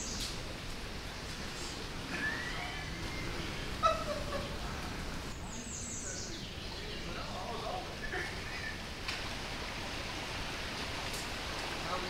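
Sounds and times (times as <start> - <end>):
water rushing through dam: 7.0 - 12.0.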